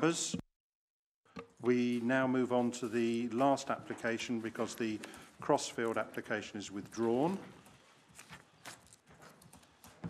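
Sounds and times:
paper handling: 0:06.7 - 0:10.0.

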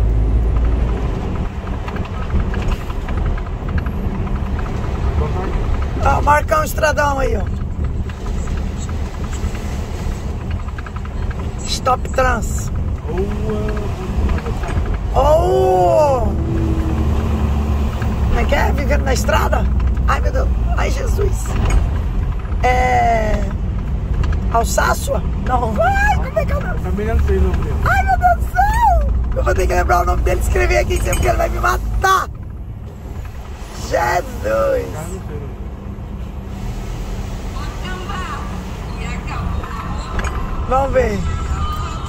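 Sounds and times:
truck engine rumbling: 0:00.0 - 0:42.0
people talking: 0:11.6 - 0:16.4, 0:18.3 - 0:21.5, 0:22.6 - 0:23.6, 0:24.5 - 0:32.3, 0:33.8 - 0:35.5, 0:37.6 - 0:42.0.

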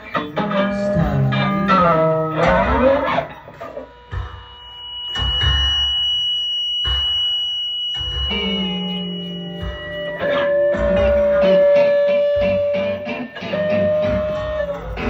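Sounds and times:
guitar playing: 0:00.0 - 0:05.1, 0:08.2 - 0:15.0
long held high tone: 0:00.0 - 0:15.0
held lower note: 0:00.4 - 0:15.0.

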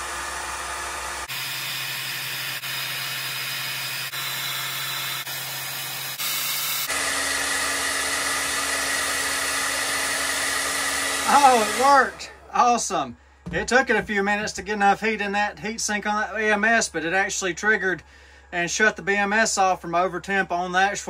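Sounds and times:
heat gun blowing hot air: 0:00.0 - 0:12.4.

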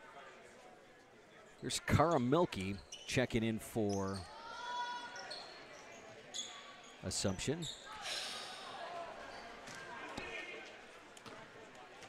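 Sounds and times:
faint crowd chatter: 0:00.0 - 0:12.0.

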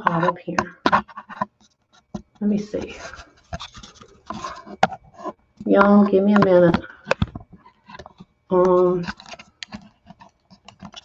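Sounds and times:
camera handling rubbing and scraping: 0:00.2 - 0:11.0.

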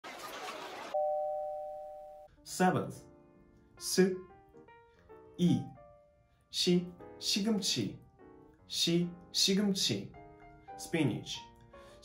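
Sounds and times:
two-tone chime ringing: 0:01.0 - 0:02.3.

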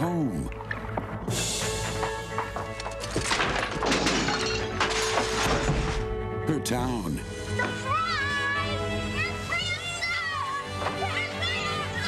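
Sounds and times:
sharp knocks and clatters: 0:02.0 - 0:06.1
things crashing: 0:02.6 - 0:06.2
glass shattering: 0:02.8 - 0:06.0.

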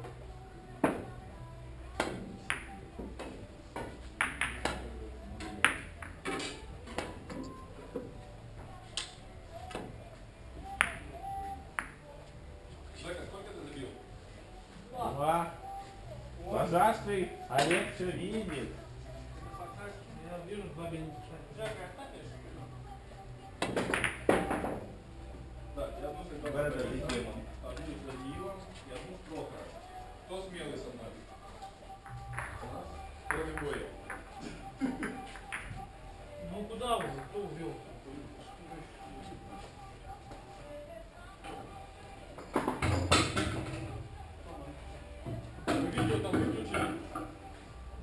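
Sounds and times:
people talking indistinctly: 0:00.0 - 0:48.0
billiard balls clacking: 0:02.5 - 0:04.8, 0:23.6 - 0:24.9.

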